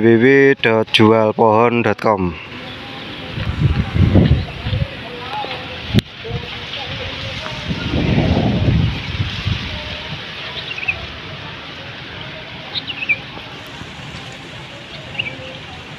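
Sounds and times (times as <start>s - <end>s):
low rumble: 7.5s - 10.0s.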